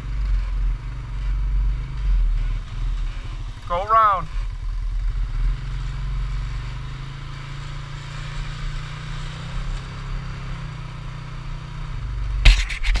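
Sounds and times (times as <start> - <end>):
atv engine running: 0.0 - 13.0.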